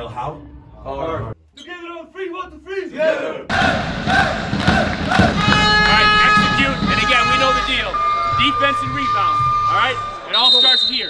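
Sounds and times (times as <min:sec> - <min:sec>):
young men shouting together: 0:02.9 - 0:07.7.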